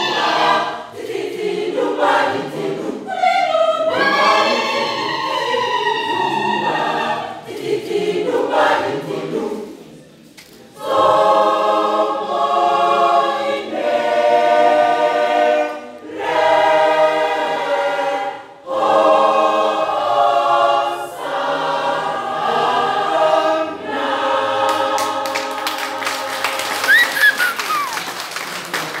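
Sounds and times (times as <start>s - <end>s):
choir singing unaccompanied: 0.0s - 10.1s, 10.7s - 27.6s
audience clapping: 24.7s - 29.0s.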